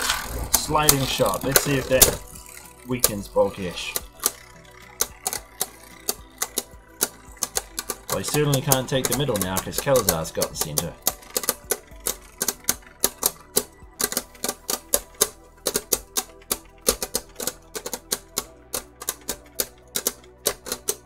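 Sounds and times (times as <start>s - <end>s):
spinning tops clashing: 0.0s - 21.0s.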